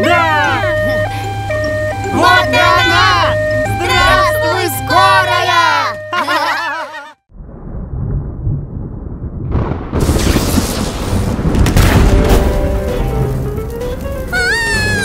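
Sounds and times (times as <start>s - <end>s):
low thunder rumble: 7.3s - 14.4s
thunderclap: 7.3s - 14.9s.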